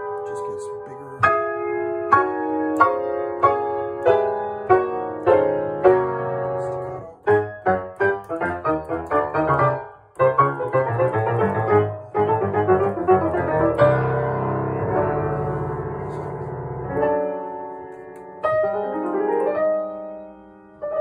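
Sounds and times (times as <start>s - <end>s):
grand piano chords and runs: 0.0s - 21.0s.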